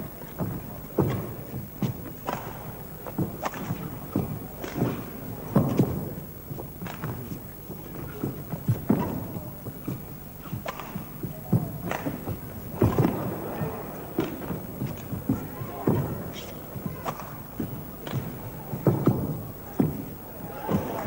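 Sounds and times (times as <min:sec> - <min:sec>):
footsteps thudding on court: 0:00.0 - 0:21.0.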